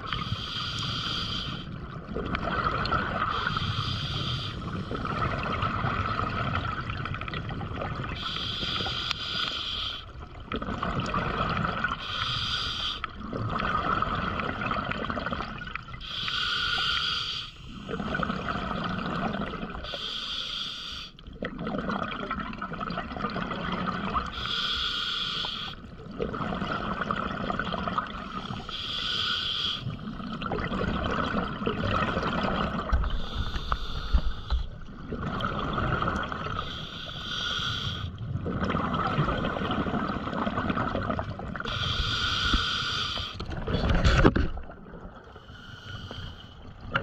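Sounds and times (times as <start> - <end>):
scuba regulator inhale hiss: 0.1 - 1.7, 3.3 - 4.9, 8.2 - 10.1, 12.0 - 13.1, 16.0 - 17.8, 19.8 - 21.2, 24.3 - 25.8, 28.5 - 30.0, 33.0 - 34.7, 36.6 - 38.2, 41.7 - 43.4, 45.4 - 46.6
gurgle of exhaled bubbles: 1.8 - 3.7, 4.6 - 8.3, 10.3 - 12.0, 13.2 - 16.0, 17.9 - 19.9, 21.3 - 24.3, 26.0 - 28.6, 29.9 - 36.8, 38.2 - 41.8, 43.4 - 45.3.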